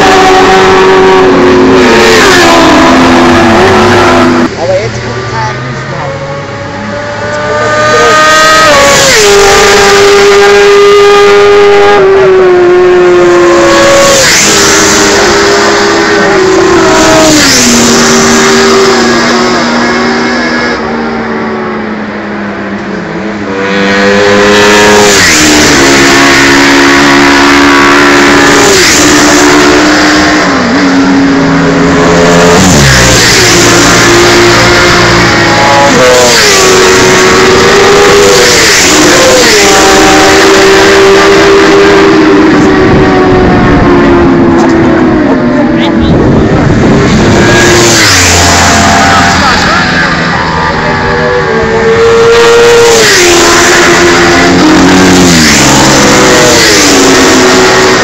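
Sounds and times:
racing motorcycles passing at high revs: 0.0 - 58.0.

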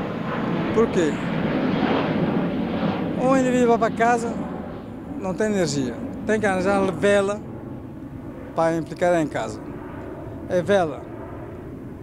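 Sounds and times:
aircraft passing overhead: 0.0 - 12.0.

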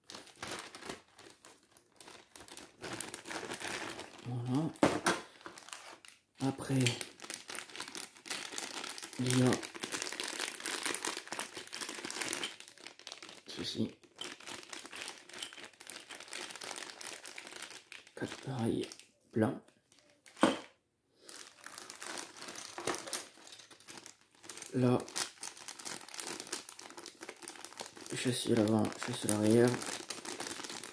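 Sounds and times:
plastic bag crinkling: 0.0 - 19.2, 19.8 - 30.9.

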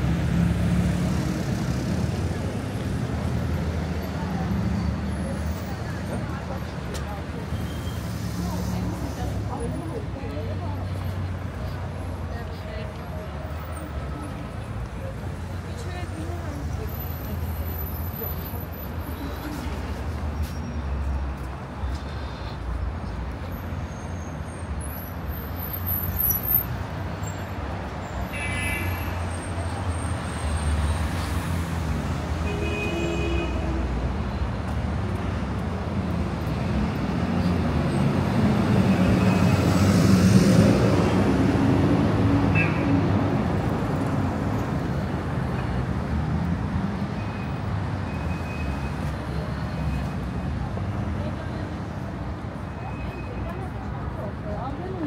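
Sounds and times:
passersby voices: 0.0 - 32.8, 33.4 - 48.0, 48.7 - 55.0
bus passing: 0.0 - 55.0
traffic rumble: 0.0 - 55.0.

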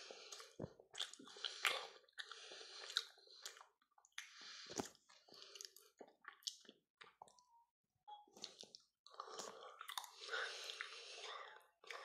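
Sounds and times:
person chewing chocolate: 0.0 - 7.5, 8.2 - 12.0.

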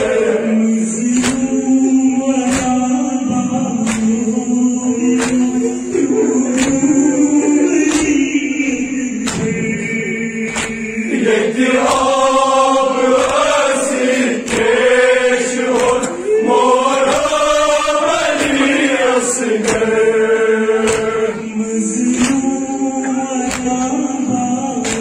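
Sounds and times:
voices chanting a lament: 0.0 - 25.0.

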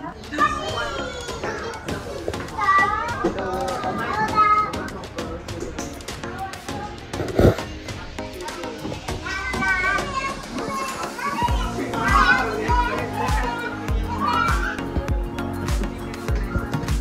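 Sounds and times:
background music with low beat: 0.0 - 17.0
children calling out and chattering: 0.0 - 17.0.

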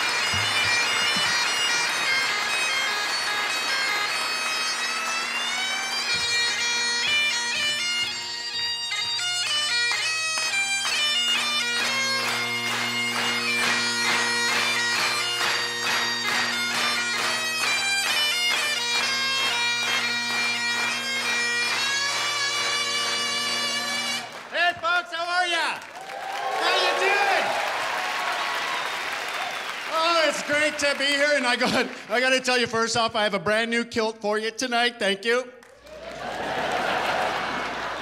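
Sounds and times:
bagpipe drones: 0.0 - 24.6.

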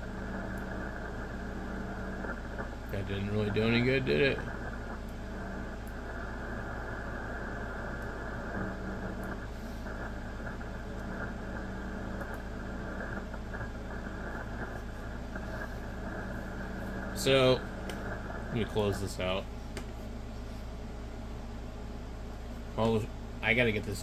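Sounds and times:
low steady hum: 0.0 - 24.0
radio static hiss: 0.0 - 24.0.

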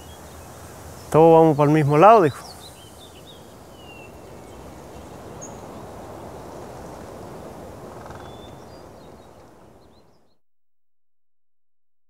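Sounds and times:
faint bird chirps: 8.0 - 10.4.

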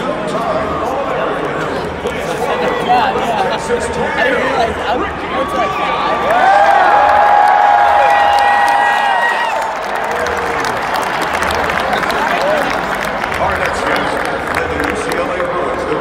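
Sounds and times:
stadium crowd cheering and applauding: 0.1 - 16.0.

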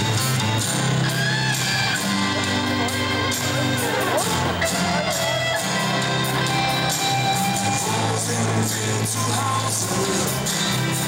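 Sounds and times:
song over stadium sound system: 0.0 - 11.0
football crowd singing: 7.7 - 11.0.

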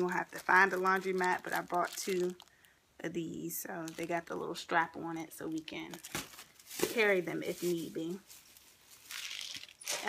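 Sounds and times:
plastic crinkling: 0.0 - 2.7, 3.6 - 4.6, 5.5 - 10.0.

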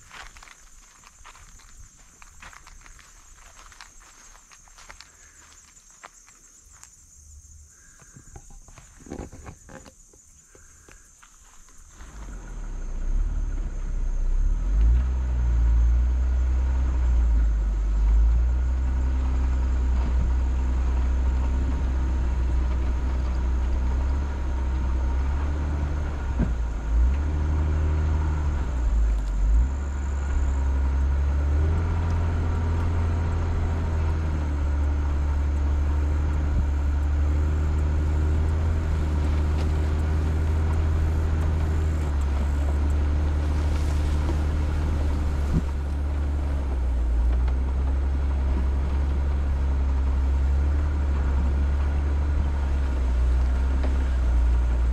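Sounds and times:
vehicle engine rumbling: 0.0 - 54.9.

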